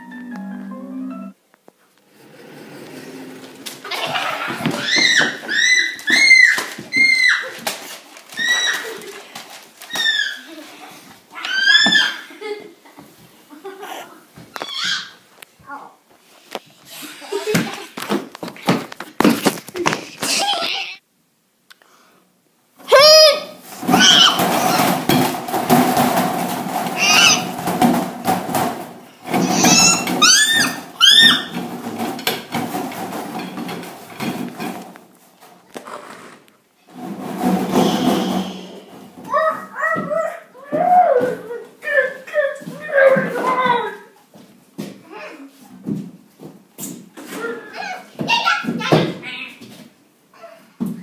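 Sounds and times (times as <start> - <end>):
rustling and handling noise: 2.8 - 11.4, 14.3 - 20.9
girls shrieking: 3.9 - 7.6, 8.3 - 9.1, 11.4 - 12.3, 22.9 - 24.9, 27.0 - 27.5, 29.4 - 31.5, 39.4 - 41.5
child's muffled squeals and grunts: 13.8 - 15.2, 20.2 - 21.0, 22.8 - 25.0, 29.3 - 31.5, 37.7 - 44.1.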